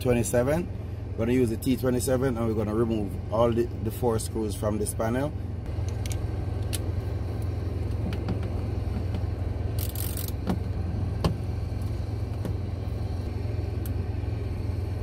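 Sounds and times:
engine idling: 0.0s - 15.0s.

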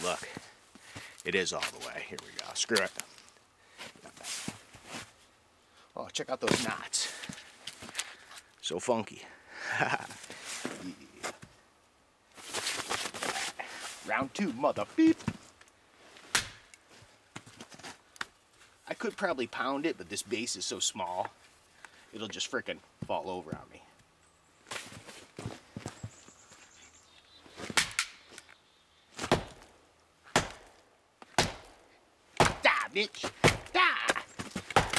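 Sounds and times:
wood scraping rustle: 0.0s - 5.3s, 12.3s - 16.3s
axe chopping into log: 29.2s - 29.7s, 30.3s - 31.8s, 32.4s - 34.9s.

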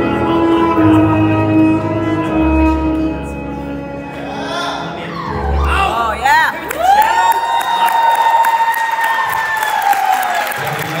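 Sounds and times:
audience applause and cheering: 5.4s - 11.0s.

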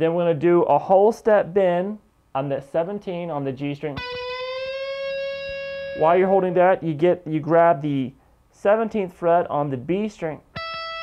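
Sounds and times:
electric guitar note bent up: 4.0s - 6.1s, 10.6s - 11.0s.

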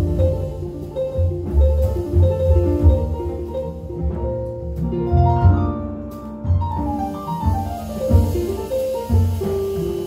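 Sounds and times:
double bass: 0.0s - 10.0s
drums: 0.0s - 10.0s.

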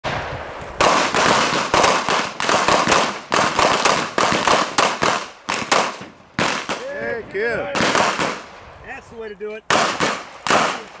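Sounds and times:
handgun shots: 9.7s - 10.9s.

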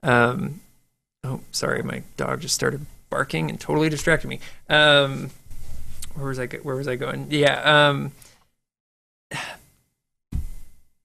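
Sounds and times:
man breathing: 4.4s - 4.7s
man sighing: 9.3s - 9.7s.

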